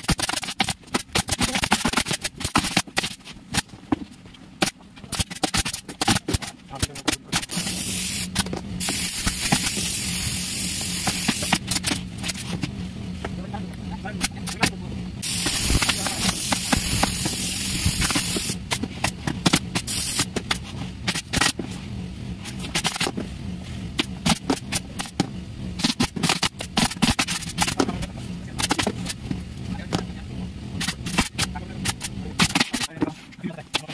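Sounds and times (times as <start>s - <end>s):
steady low hum: 0.0s - 33.9s
loud hissing air: 7.4s - 11.8s, 15.2s - 18.7s, 19.8s - 20.4s.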